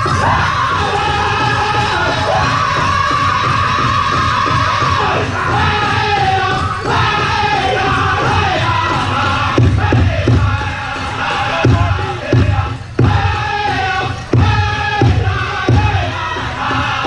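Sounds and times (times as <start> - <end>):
high strained unison singing: 0.0 - 17.0
large drum beats: 0.0 - 17.0.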